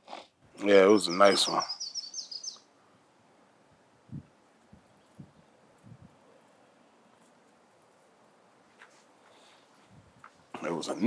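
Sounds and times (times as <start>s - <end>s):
small bird chirping: 0.6s - 2.7s.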